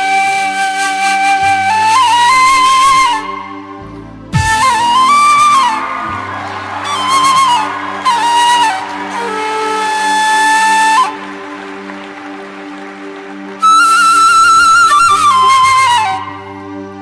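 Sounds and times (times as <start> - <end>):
flute melody: 0.0 - 17.0
low sustained accompaniment: 0.0 - 17.0.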